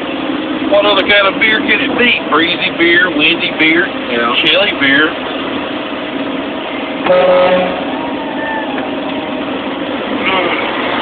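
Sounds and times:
road noise: 0:00.0 - 0:11.0
truck engine rumble: 0:00.0 - 0:11.0.

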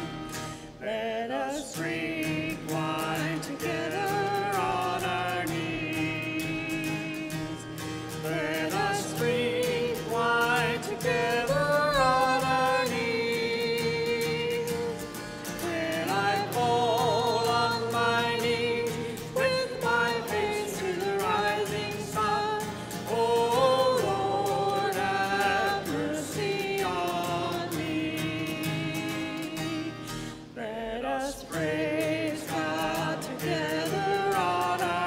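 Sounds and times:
guitar accompaniment: 0:00.0 - 0:35.0
hymn singing: 0:00.0 - 0:35.0.

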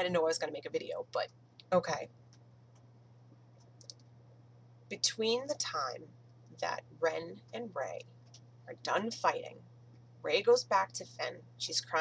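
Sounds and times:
woman speaking: 0:00.0 - 0:02.1, 0:04.9 - 0:08.1, 0:08.7 - 0:09.6, 0:10.2 - 0:12.0
steady low hum: 0:00.0 - 0:12.0.

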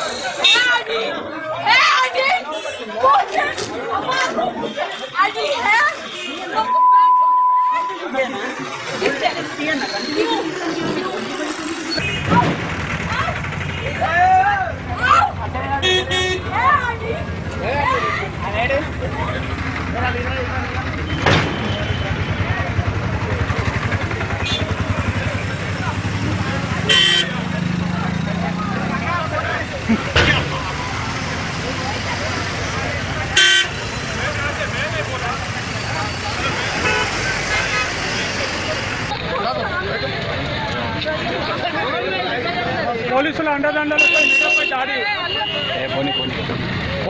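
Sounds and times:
road traffic: 0:00.0 - 0:47.0
voices speaking over one another: 0:00.0 - 0:47.0
vehicle engine running: 0:08.5 - 0:39.3.

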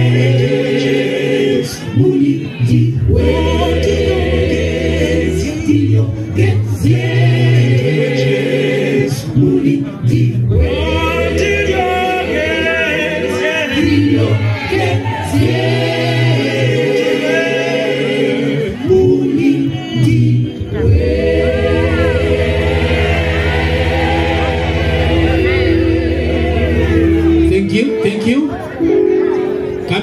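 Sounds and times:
choir singing a cappella gospel: 0:00.0 - 0:27.9.

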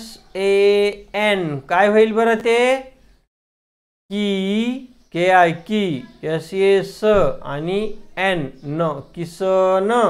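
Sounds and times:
man speaking: 0:00.0 - 0:03.0, 0:04.1 - 0:10.0.

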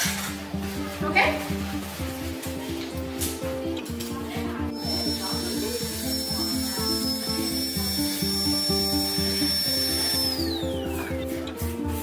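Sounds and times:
background music: 0:00.0 - 0:12.0
dental drill whining: 0:04.7 - 0:11.3.

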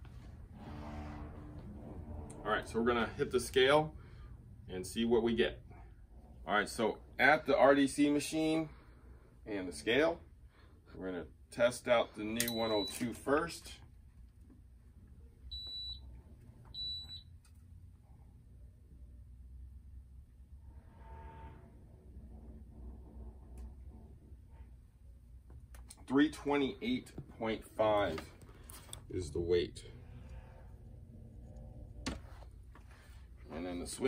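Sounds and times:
low hum: 0:00.0 - 0:07.9, 0:14.9 - 0:34.0.

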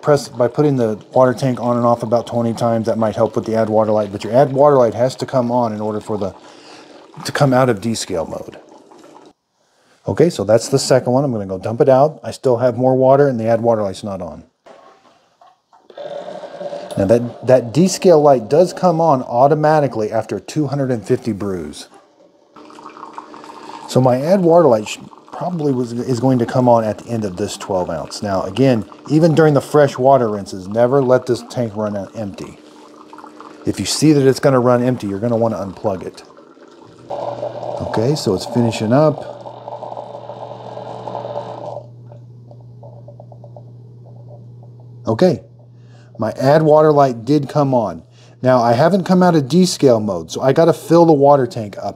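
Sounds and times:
coffee brewer buzzing hum: 0:00.0 - 0:08.5, 0:15.9 - 0:51.8
water streaming into cup: 0:00.0 - 0:09.4, 0:15.9 - 0:44.9
water dripping: 0:21.9 - 0:37.1.

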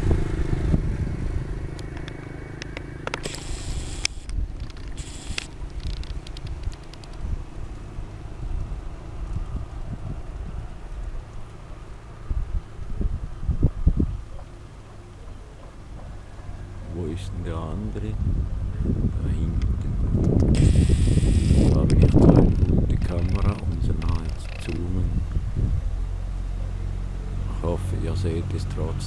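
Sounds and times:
rumbling wind noise: 0:00.0 - 0:02.2, 0:03.0 - 0:11.5, 0:12.2 - 0:14.4, 0:15.9 - 0:27.0
kite hummer drone: 0:00.0 - 0:29.0
rustling clicks: 0:01.8 - 0:07.2, 0:21.6 - 0:24.9.

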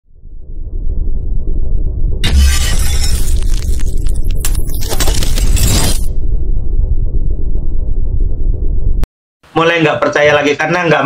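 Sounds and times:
glass shattering: 0:02.2 - 0:06.1.

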